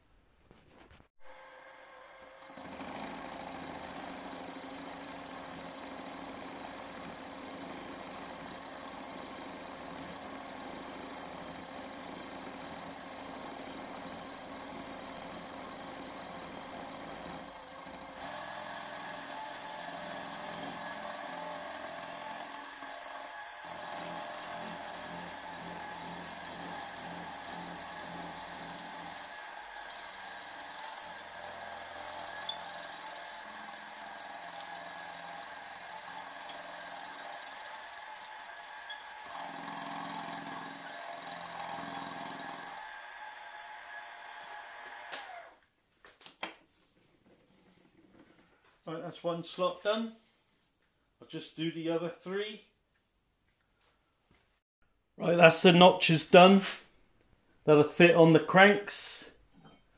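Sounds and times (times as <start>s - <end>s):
milling machine cutting steel: 1.3s - 45.4s.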